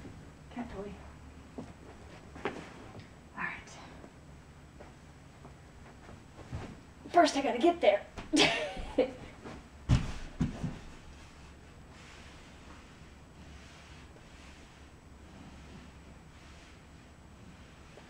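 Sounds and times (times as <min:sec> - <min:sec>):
dull thumps: 0:09.4 - 0:10.9.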